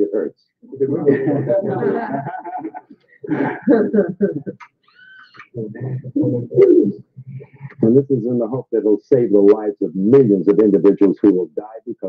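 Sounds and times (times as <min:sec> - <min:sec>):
men laughing: 0:00.9 - 0:04.7.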